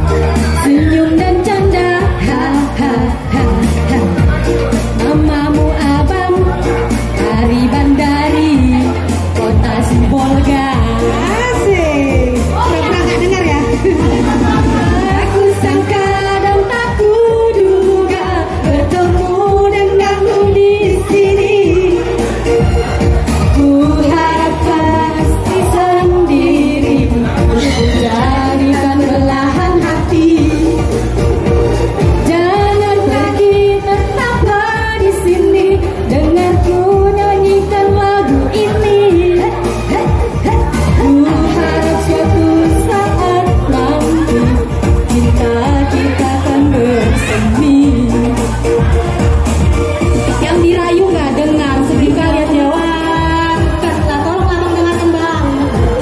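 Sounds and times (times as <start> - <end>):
loud backing music: 0.0 - 56.0
women singing into microphones: 0.0 - 56.0.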